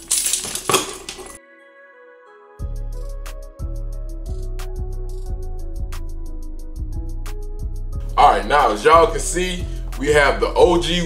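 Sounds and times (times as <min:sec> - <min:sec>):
keys jingling: 0:00.0 - 0:01.4
quiet background music: 0:00.0 - 0:11.0.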